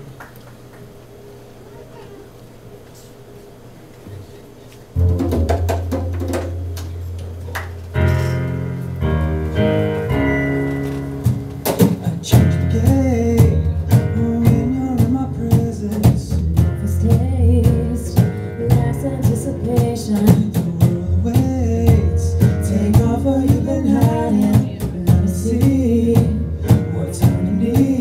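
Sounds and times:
drum kit: 4.9s - 28.0s
bass and keyboard notes: 5.0s - 28.0s
woman singing lead vocal: 16.7s - 21.1s, 22.7s - 26.4s.

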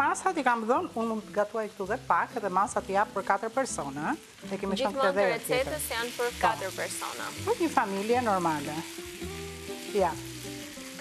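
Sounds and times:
people talking: 0.0s - 8.8s
food sizzling in a pan: 0.0s - 11.0s.

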